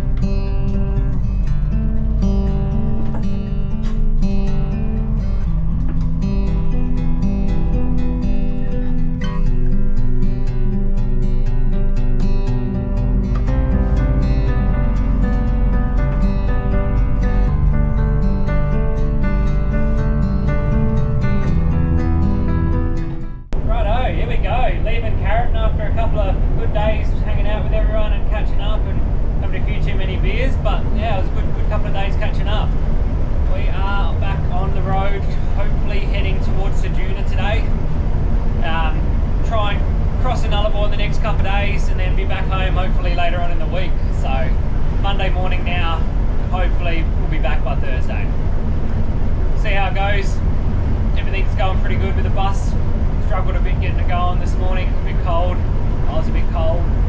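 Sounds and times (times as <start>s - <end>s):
bus engine rumble: 0.0s - 11.0s, 11.8s - 57.0s.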